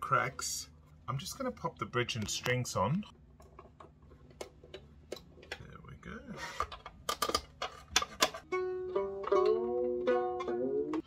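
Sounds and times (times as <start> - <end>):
violin strings plucked: 8.5 - 11.0.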